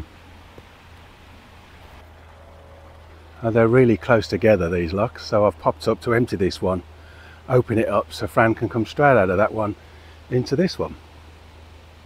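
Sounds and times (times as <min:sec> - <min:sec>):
light hiss: 0:00.0 - 0:12.0.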